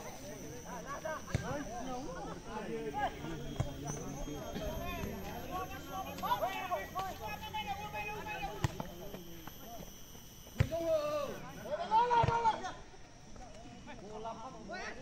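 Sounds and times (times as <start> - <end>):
people calling out and talking: 0.0 - 13.2.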